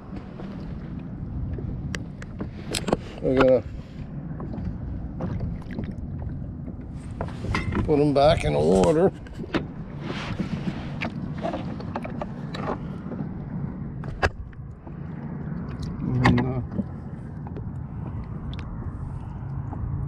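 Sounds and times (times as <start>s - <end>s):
muffled water sloshing: 0.0s - 20.0s.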